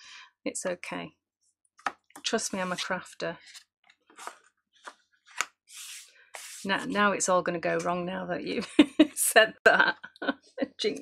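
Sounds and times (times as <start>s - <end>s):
soft rubbing: 5.3s - 7.0s
lid brushing fabric: 5.7s - 7.0s.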